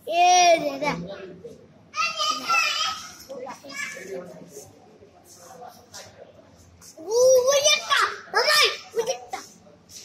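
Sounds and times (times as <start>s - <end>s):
children's voices: 0.0s - 4.8s, 6.9s - 9.6s
child talking and calling out: 1.9s - 4.3s, 7.0s - 9.5s.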